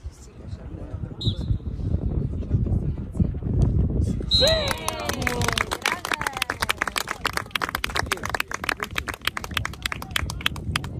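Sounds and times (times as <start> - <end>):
voices: 4.2 - 10.6
spectators clapping: 4.4 - 10.9.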